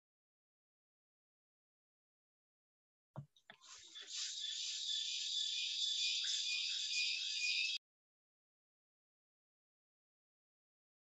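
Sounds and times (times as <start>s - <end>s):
faint whistling tones: 3.6s - 7.8s
steady high-pitched hiss: 3.7s - 7.7s.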